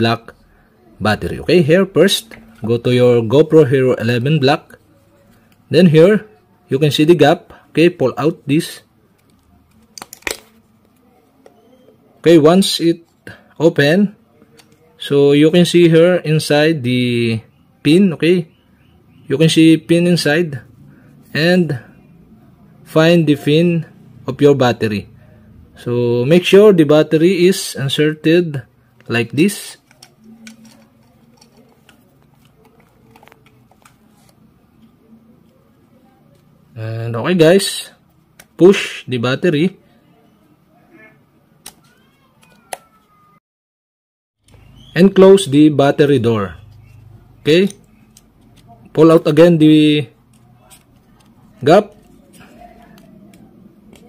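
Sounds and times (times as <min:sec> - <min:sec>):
faint handling noise: 0:28.9 - 0:36.6, 0:46.6 - 0:49.2, 0:50.2 - 0:54.0.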